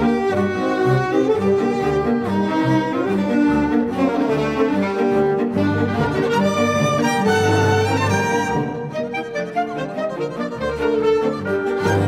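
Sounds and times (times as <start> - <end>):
bowed strings chamber orchestra: 0.0 - 12.0.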